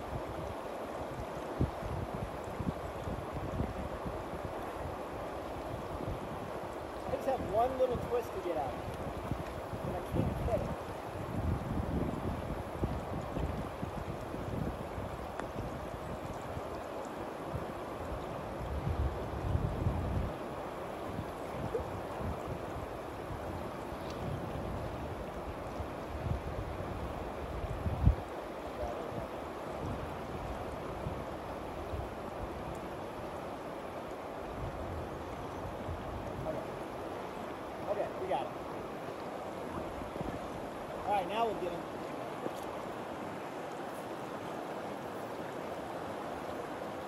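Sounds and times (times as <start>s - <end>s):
fast-flowing river: 0.0s - 47.0s
wind buffeting microphone: 0.0s - 47.0s.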